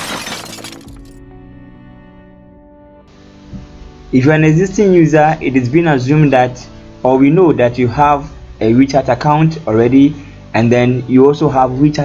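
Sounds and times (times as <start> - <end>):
glass shattering effect: 0.0 - 1.2
background music: 0.0 - 12.0.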